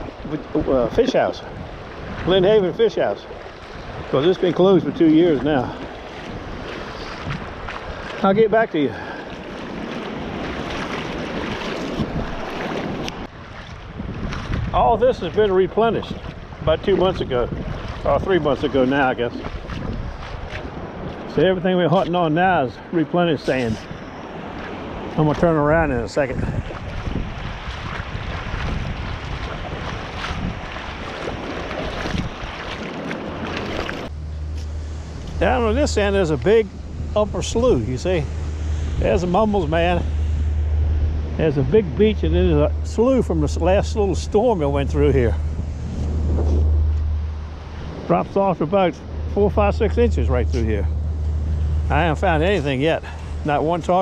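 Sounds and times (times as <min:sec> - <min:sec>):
wind rumbling on microphone: 0:00.0 - 0:22.6, 0:23.4 - 0:54.0
small waves washing over sand: 0:00.0 - 0:54.0
steady low rumble: 0:32.1 - 0:54.0.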